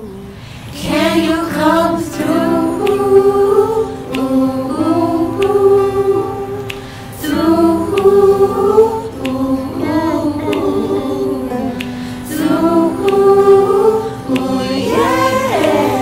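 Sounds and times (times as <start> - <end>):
choir singing in close harmony: 0.7 - 16.0
soft regular ticking beat: 0.8 - 16.0.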